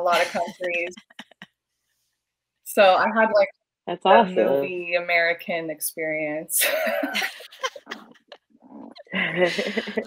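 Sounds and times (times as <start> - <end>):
women laughing: 0.0 - 1.4, 6.6 - 8.4, 9.1 - 10.0.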